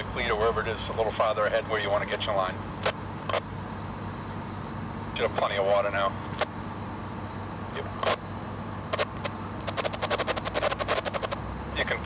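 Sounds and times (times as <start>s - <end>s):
diesel engines droning: 0.0s - 12.0s
sharp clicks: 8.9s - 11.4s.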